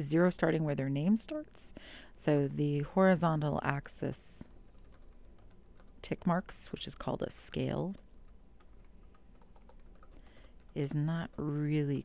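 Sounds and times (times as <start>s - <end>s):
faint keyboard typing: 4.3s - 12.0s.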